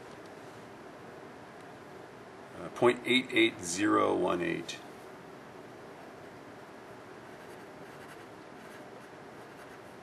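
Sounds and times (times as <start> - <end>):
pencil scratching on paper: 7.2 - 10.0.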